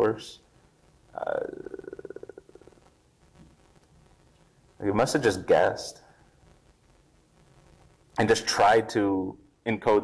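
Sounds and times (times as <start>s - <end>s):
man's drawn-out uh with vocal fry: 1.2s - 2.7s.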